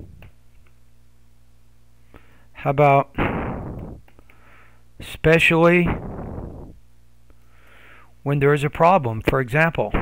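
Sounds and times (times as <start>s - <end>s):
breath blowing on microphone: 3.2s - 4.0s, 5.8s - 6.8s.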